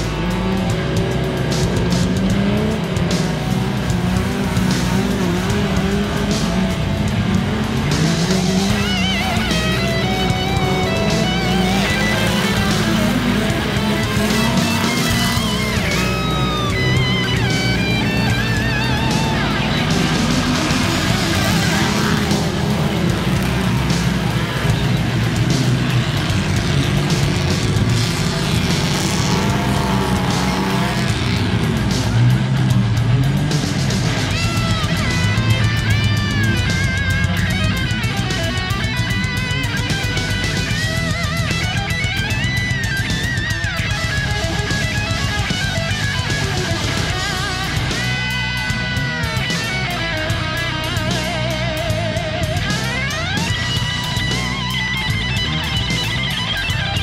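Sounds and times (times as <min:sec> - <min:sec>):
background music: 0:00.0 - 0:57.0
truck engines revving: 0:00.0 - 0:57.0.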